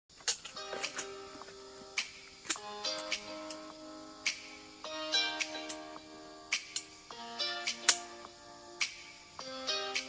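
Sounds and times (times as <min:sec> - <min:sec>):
sharp percussive clicks: 0:05.4 - 0:05.9, 0:06.5 - 0:07.0, 0:07.7 - 0:08.1.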